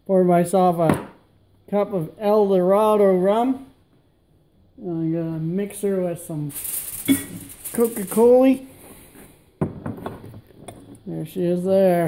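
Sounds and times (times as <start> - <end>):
glass bottle and ice clinking: 7.0 - 7.5.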